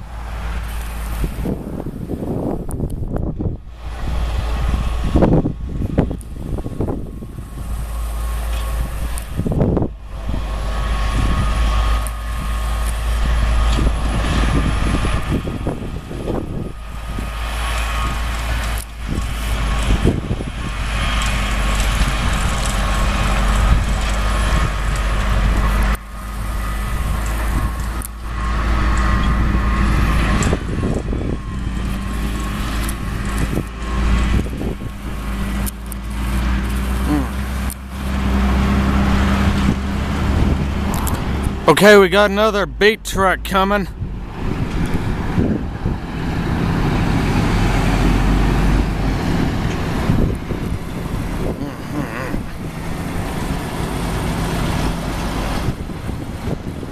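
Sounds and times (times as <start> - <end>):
harvester machinery whining: 0.0 - 56.9
tractor diesel engine running: 0.0 - 56.9.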